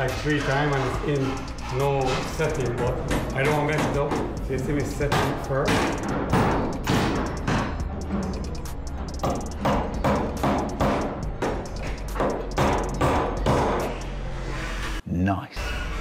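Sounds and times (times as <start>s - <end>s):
background music: 0.0s - 16.0s
hammer striking nails into wood: 5.0s - 7.8s, 9.2s - 13.9s.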